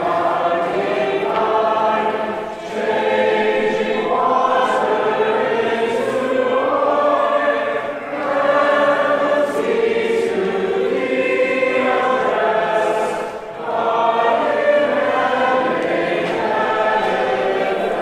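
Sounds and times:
group singing a hymn: 0.0s - 18.0s.

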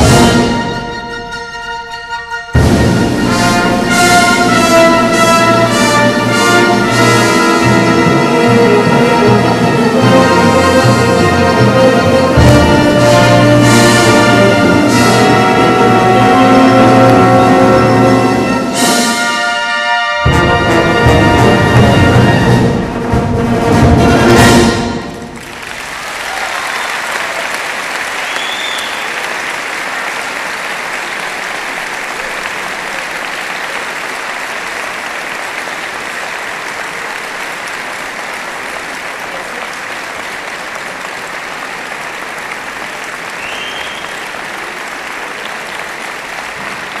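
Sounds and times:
band playing last chord: 0.0s - 23.1s
audience applauding: 3.1s - 18.6s, 25.1s - 47.0s.

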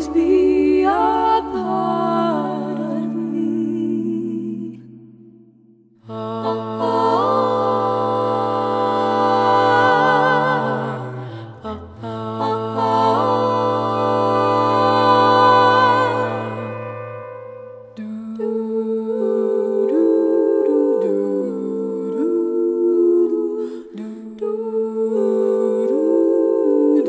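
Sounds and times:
women singing a cappella harmony: 0.0s - 16.9s, 17.9s - 27.0s.

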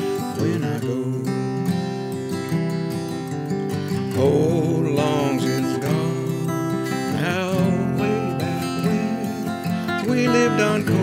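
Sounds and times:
acoustic guitar chords: 0.0s - 11.0s
person singing folk song: 0.0s - 11.0s.

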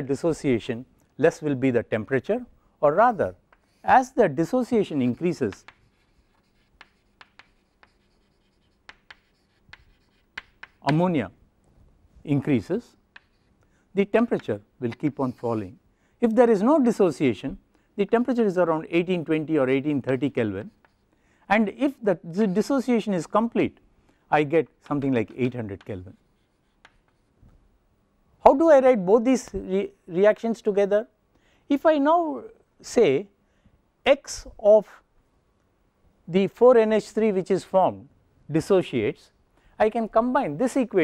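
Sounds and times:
chalk tapping and scratching: 3.5s - 11.1s, 13.1s - 13.6s, 14.2s - 15.7s, 19.8s - 21.1s, 24.9s - 27.4s.

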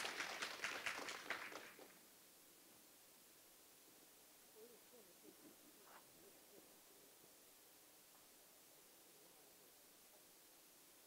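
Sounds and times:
audience applause: 0.0s - 2.0s.

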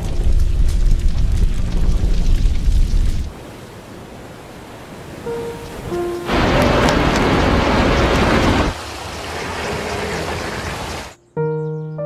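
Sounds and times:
heavy rain: 0.0s - 11.2s
rushing floodwater: 1.4s - 11.2s
held music notes: 5.3s - 8.7s.

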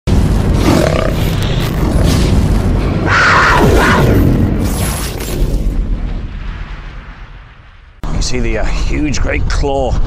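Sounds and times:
rumbling fiery roar: 0.1s - 4.7s.

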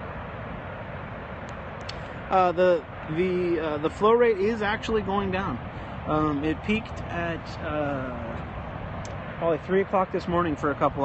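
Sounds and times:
water roaring from dam spillway: 0.0s - 11.0s.

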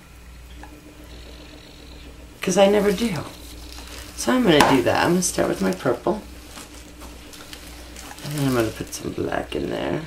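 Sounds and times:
faint steady tone: 0.0s - 4.5s
faint hiss: 0.0s - 10.0s
low steady hum: 0.0s - 10.0s.

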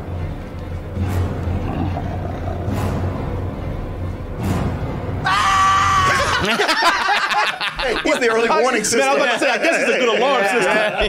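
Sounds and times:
dark low background music: 0.0s - 8.3s
man screaming: 5.2s - 6.4s
laughter: 6.0s - 8.5s, 9.2s - 11.0s.

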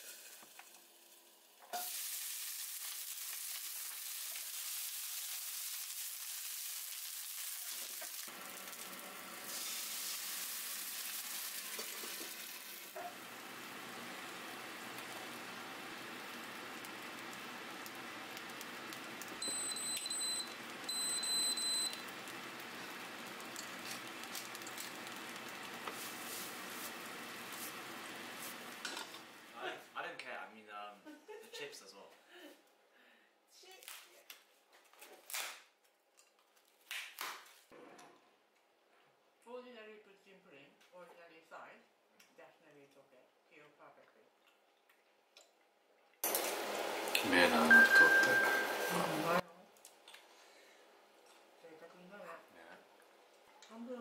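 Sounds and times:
vegetables sizzling in hot oil: 0.0s - 29.6s, 46.2s - 49.4s
short electronic beeps: 47.7s - 49.1s.

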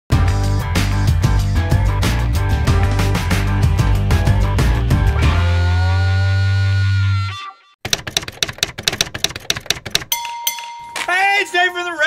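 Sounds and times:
intro music: 0.1s - 6.0s
fast sharp clicks: 7.9s - 10.1s.

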